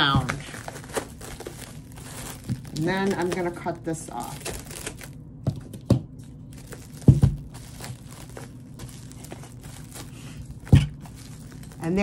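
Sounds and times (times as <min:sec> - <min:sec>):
plastic wrap crinkling: 0:00.0 - 0:12.0.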